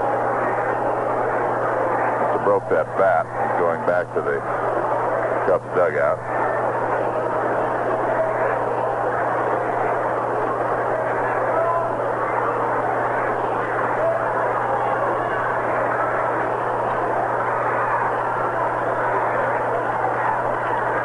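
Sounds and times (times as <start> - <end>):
crowd murmur over radio: 0.0 - 21.0.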